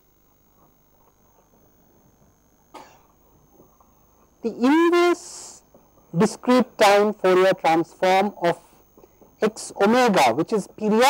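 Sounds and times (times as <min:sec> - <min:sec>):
person coughing softly: 0:02.7 - 0:03.2.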